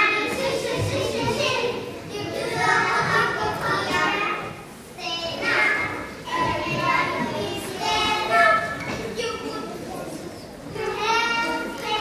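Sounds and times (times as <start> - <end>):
young children's voices: 0.0 - 12.0.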